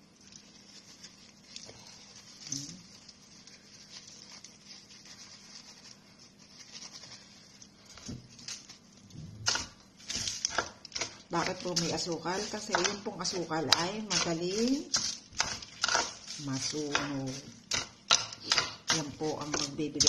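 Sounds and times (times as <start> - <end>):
aluminium foil crinkling: 0.0 - 20.0.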